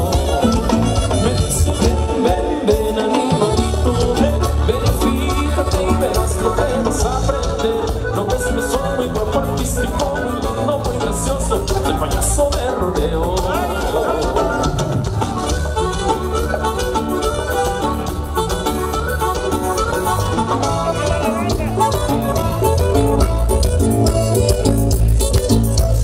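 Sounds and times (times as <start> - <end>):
regional band dance music: 0.0 - 26.0.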